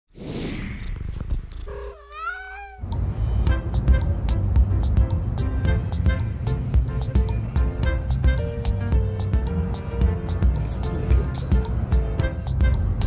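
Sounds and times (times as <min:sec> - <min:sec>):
cat meow: 0:01.7 - 0:03.0
upbeat music with steady beat: 0:03.5 - 0:13.0.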